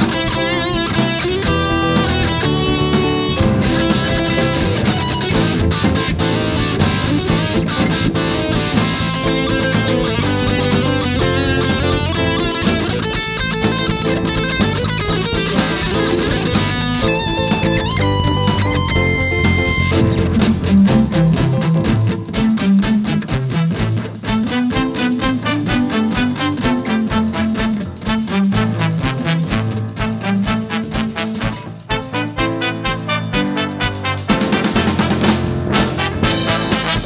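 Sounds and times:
bass guitar and beat: 0.0s - 37.0s
electric guitar solo: 0.0s - 37.0s.

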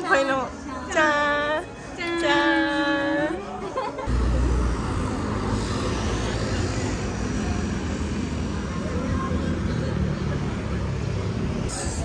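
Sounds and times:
city street rumble: 0.0s - 12.0s
faint voices: 0.0s - 12.0s.

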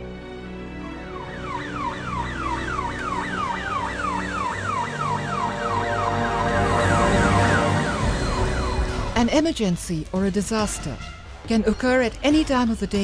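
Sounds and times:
background music: 0.0s - 13.0s
ambulance siren wailing: 0.6s - 9.2s.

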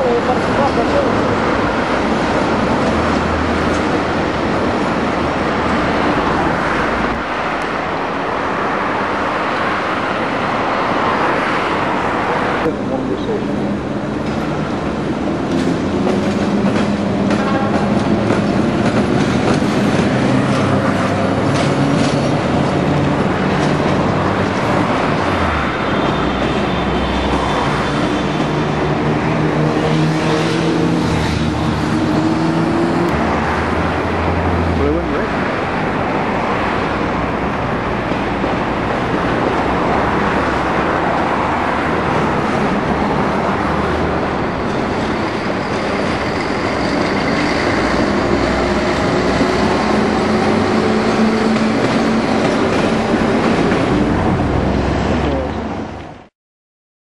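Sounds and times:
rail yard rumble: 0.0s - 56.3s
locomotive motor humming: 42.0s - 55.6s.

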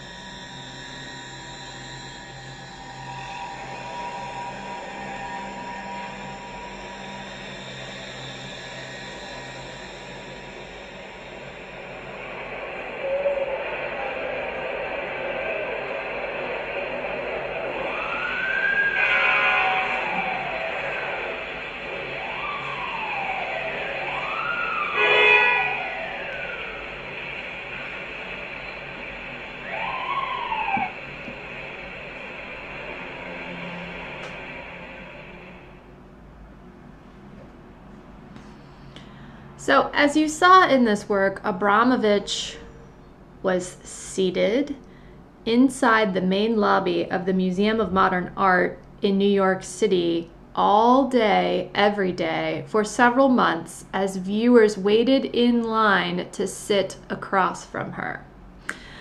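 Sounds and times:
siren wailing: 0.0s - 35.9s, 39.0s - 43.0s
sustained film music: 0.0s - 36.5s.

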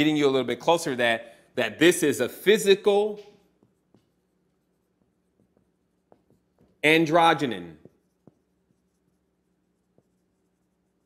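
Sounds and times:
low steady hum: 0.0s - 11.0s
marker writing on whiteboard: 1.8s - 11.0s.

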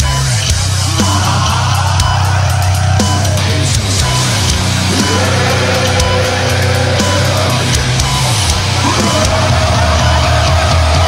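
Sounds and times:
hardcore metal music: 0.0s - 11.0s.

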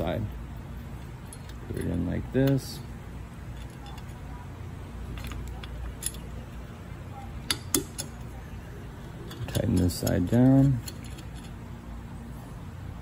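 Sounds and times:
metallic clicks of nut and washer: 9.3s - 11.6s.

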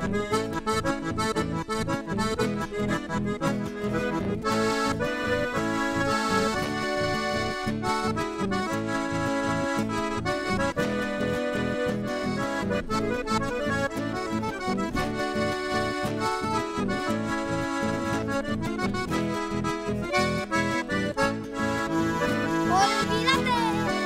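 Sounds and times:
acoustic guitar accompaniment: 0.0s - 24.0s
button accordion melody: 0.0s - 24.0s.

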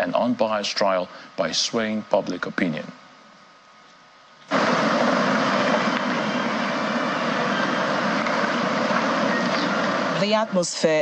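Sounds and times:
crowd noise in large hall: 4.5s - 10.5s.

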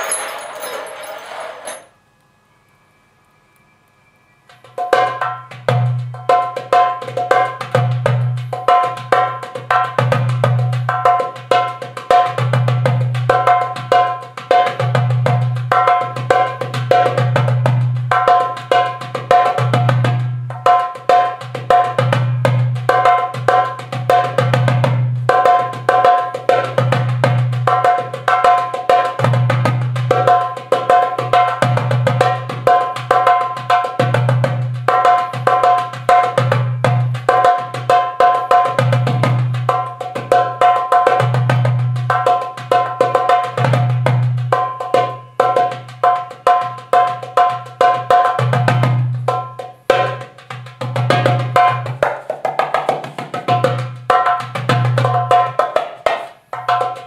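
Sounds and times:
hand percussion fast rhythm: 4.5s - 57.0s.

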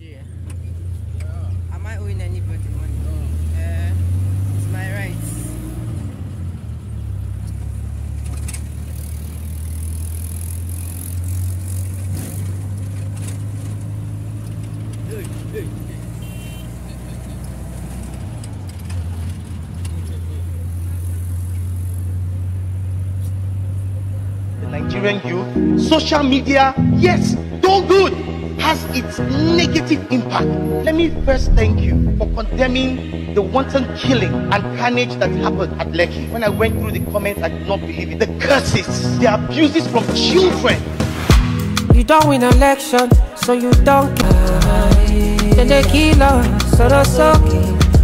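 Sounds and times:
vehicle engine and road rumble: 0.0s - 42.4s, 43.9s - 48.0s.

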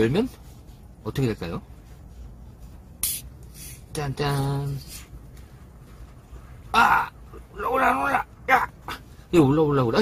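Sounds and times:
gas hissing from bottle: 3.0s - 3.8s.

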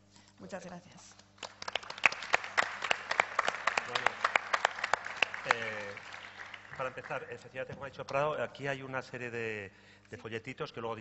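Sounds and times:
audience applause: 1.4s - 7.5s.

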